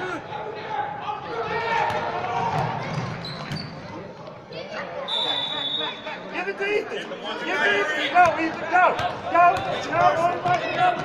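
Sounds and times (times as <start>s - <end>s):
voices in a large hall: 0.0s - 11.0s.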